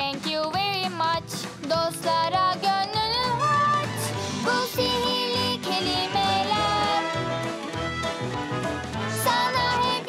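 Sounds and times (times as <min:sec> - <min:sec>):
instrumental backing music: 0:00.0 - 0:10.0.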